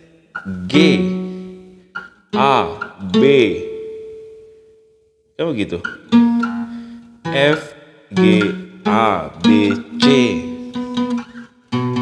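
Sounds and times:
acoustic guitar notes picked: 0:00.0 - 0:12.0.

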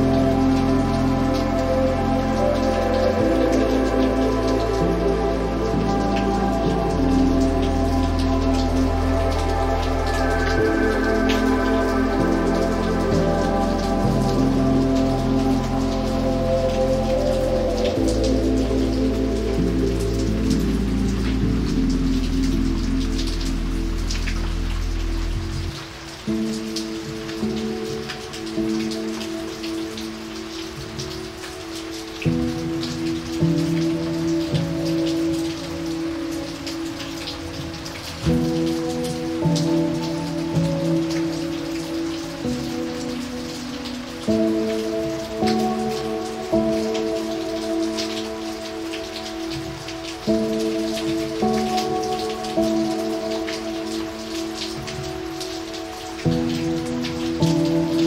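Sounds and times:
calm music chords: 0:00.0 - 0:58.0
rain on wet pavement: 0:00.0 - 0:58.0.

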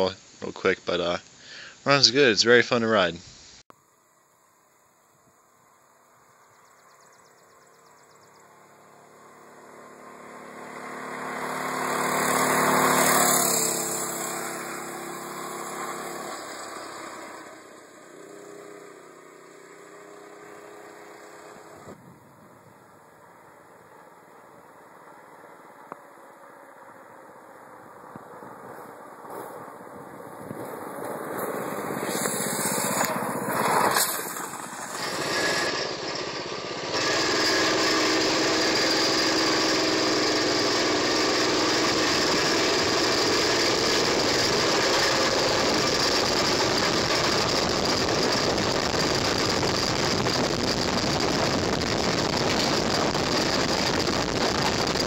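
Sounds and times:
small motorbike engine running: 0:04.6 - 0:55.0.

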